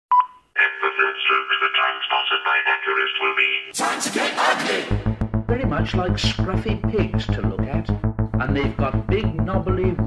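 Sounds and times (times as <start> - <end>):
telephone-like hardcore techno: 3.8 - 10.0.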